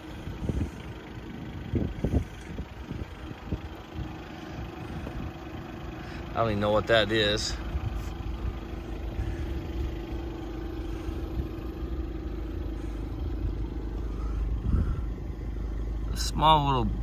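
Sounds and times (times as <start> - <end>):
constant hum: 0.0 - 17.0
low outdoor rumble: 0.0 - 17.0.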